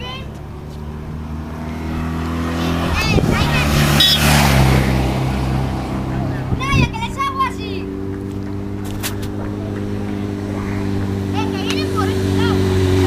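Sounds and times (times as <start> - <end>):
vehicle engine passing by: 0.0 - 13.0
onlookers shouting: 9.4 - 13.0.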